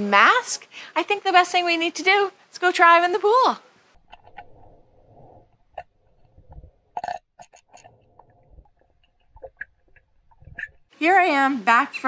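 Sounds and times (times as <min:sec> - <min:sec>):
faint gurgling and knocking: 0:03.9 - 0:11.0.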